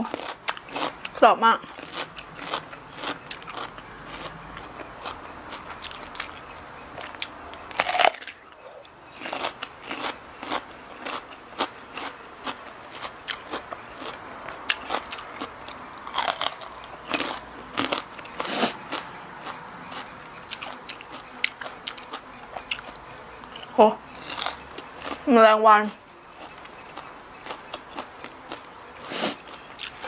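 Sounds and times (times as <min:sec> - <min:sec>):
radish crunching being chewed: 0:00.0 - 0:06.4, 0:07.0 - 0:25.3.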